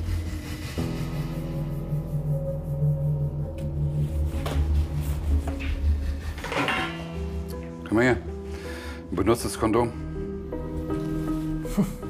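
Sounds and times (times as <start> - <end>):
background music with low drone: 0.0 - 12.0.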